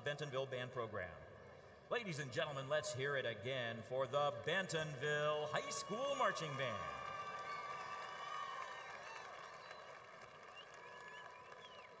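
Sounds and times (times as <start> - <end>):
crowd applauding and cheering: 5.6 - 12.0
whistles: 7.0 - 12.0.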